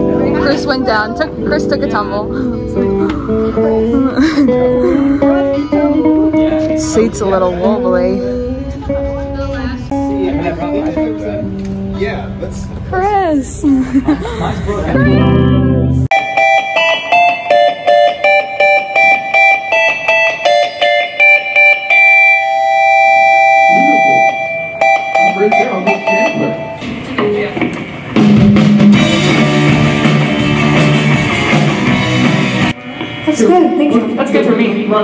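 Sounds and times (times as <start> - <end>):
guitar picking ringing notes: 0.0 - 13.4, 14.9 - 27.5, 28.2 - 34.6
rock band with drums and bass: 14.9 - 22.8, 24.0 - 33.9.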